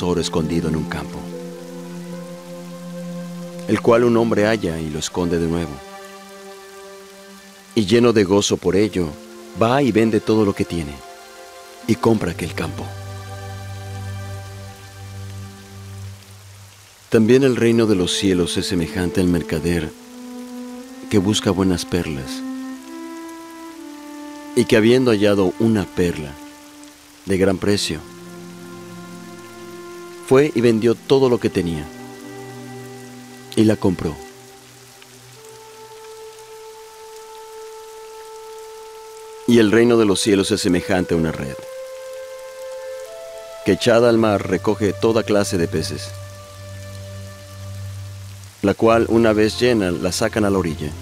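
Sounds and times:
soft sustained chords music: 0.0 - 51.0
steady hiss: 0.0 - 51.0.

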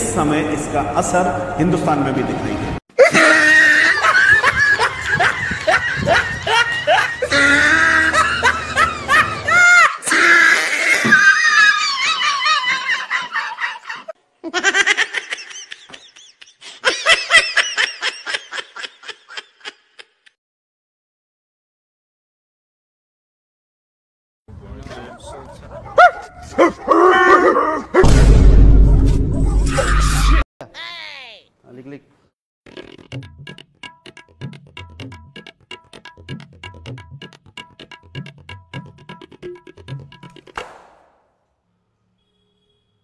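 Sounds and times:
person laughing: 3.0 - 10.2, 11.0 - 20.4
dog barking: 24.9 - 28.1.

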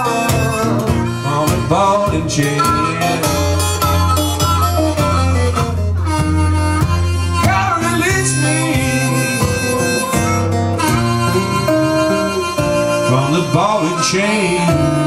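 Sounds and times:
harmonica with bent notes: 0.0 - 15.0
strummed acoustic guitar: 0.0 - 15.0.

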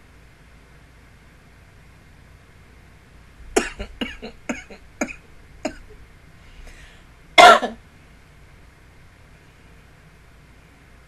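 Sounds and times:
person coughing: 3.6 - 5.9, 7.4 - 7.8.

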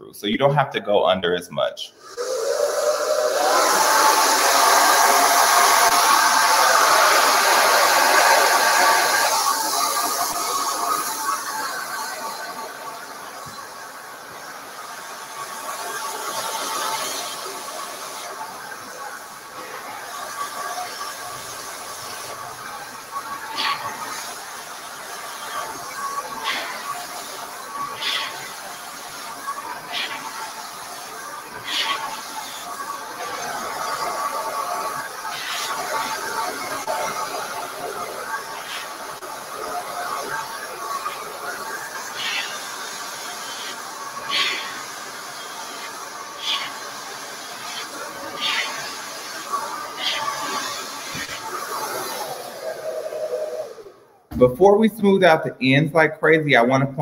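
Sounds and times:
hair dryer blowing air: 2.0 - 54.5.

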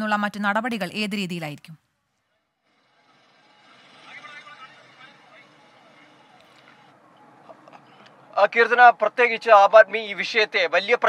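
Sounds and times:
faint road traffic: 0.0 - 11.0.

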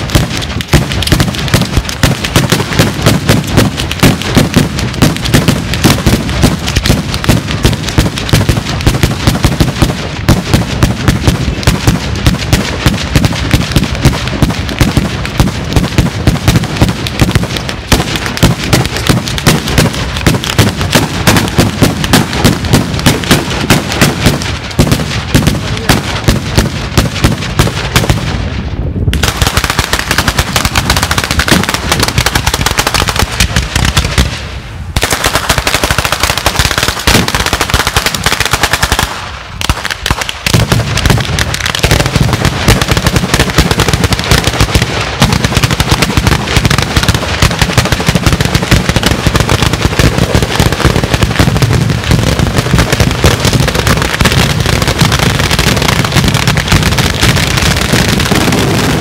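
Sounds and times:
firecrackers rattling bangs: 0.0 - 59.0.

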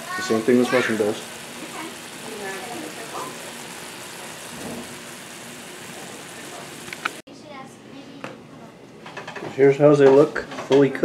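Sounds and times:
mushrooms sizzling in a skillet: 0.0 - 7.2.

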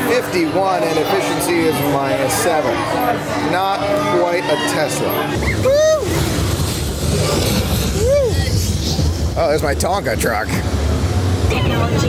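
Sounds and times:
ride vehicle rolling on track: 5.4 - 12.0.

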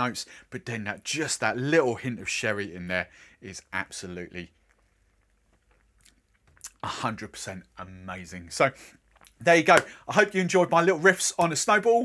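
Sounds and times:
mouth clicks: 4.6 - 6.9.

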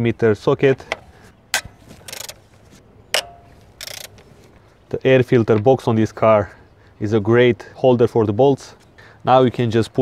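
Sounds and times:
sharp wrench click: 1.6 - 2.4, 3.1 - 4.2
rapid ratchet clicking: 2.0 - 2.4, 3.2 - 4.2.

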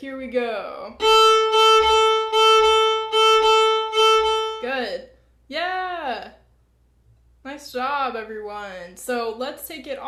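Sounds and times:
woman speaking: 0.0 - 1.0, 4.6 - 6.4, 7.4 - 10.0
fiddle bowing single note: 1.0 - 4.7.

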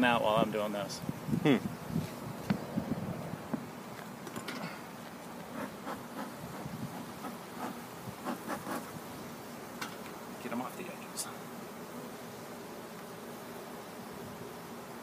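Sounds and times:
bees buzzing: 0.0 - 15.0
clicks and knocks of hive frames: 9.7 - 10.2.

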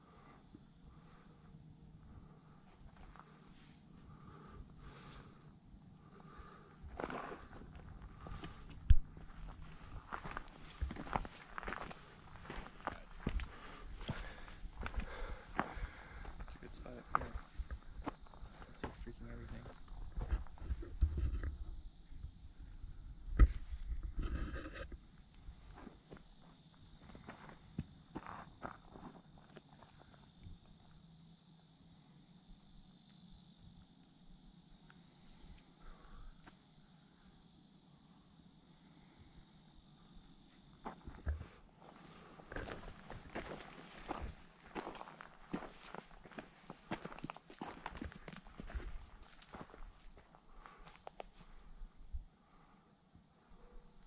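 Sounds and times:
high-pitched background hiss: 0.0 - 54.0
footsteps on dirt and rock: 7.0 - 21.0, 42.0 - 51.4.

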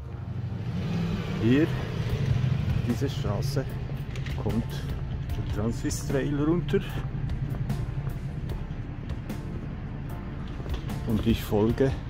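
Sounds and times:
background music with low tone: 0.0 - 12.0
footsteps on pavement: 3.8 - 11.9.

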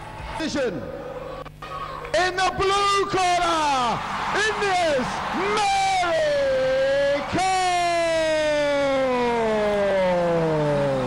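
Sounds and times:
announcer shouting: 2.1 - 11.0.

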